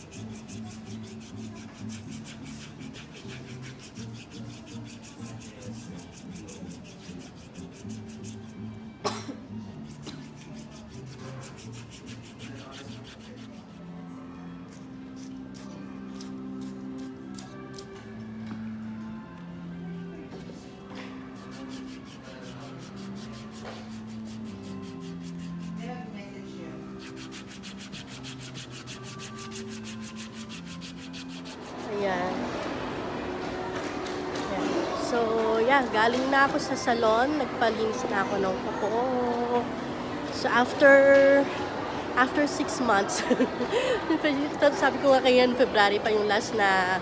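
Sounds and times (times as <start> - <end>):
foot file rasping callus: 0.0 - 8.5, 9.8 - 13.8, 21.4 - 25.8, 27.0 - 31.8
music: 0.0 - 47.0
loud cough-like sound: 9.0 - 9.5.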